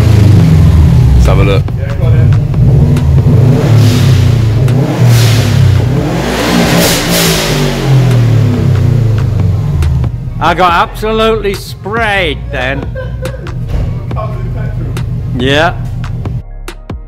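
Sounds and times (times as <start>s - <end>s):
car engine revving: 0.0s - 16.4s.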